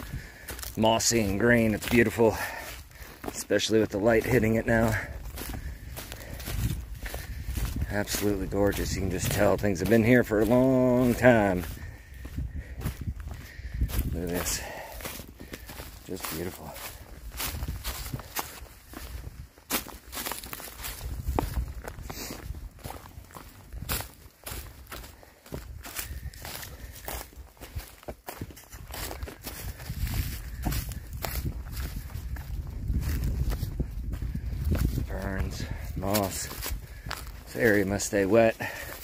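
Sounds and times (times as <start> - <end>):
footsteps crunching dry leaves: 0.0 - 39.0.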